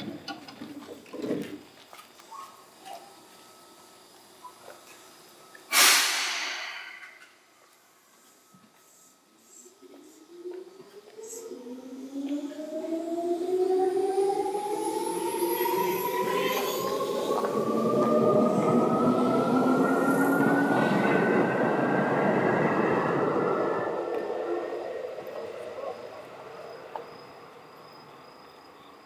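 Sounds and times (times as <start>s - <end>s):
crickets chirping: 0.0s - 5.8s, 6.4s - 29.0s
wheel and rail rumble: 0.0s - 29.0s
electric train motors whining: 2.8s - 28.2s.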